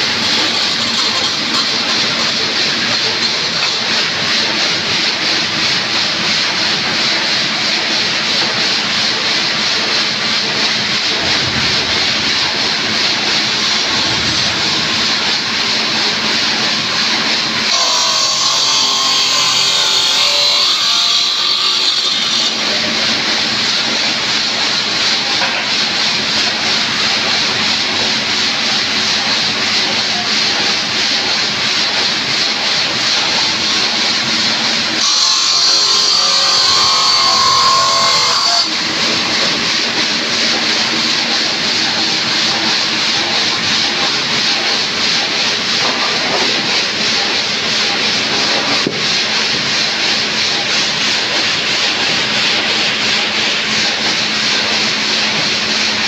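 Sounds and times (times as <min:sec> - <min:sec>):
stone-cutting saw hissing: 0:10.5 - 0:25.8, 0:31.7 - 0:43.5.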